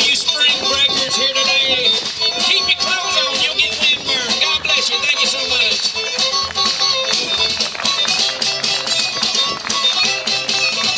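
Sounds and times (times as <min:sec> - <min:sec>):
fiddle: 0:00.0 - 0:10.9
upright bass: 0:00.0 - 0:10.9.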